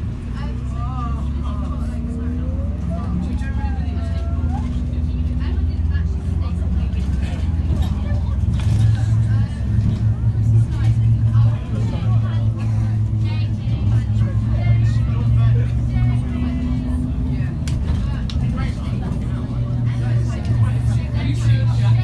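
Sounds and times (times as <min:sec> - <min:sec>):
bus diesel engine running: 0:00.0 - 0:22.0
passengers chattering: 0:00.0 - 0:22.0.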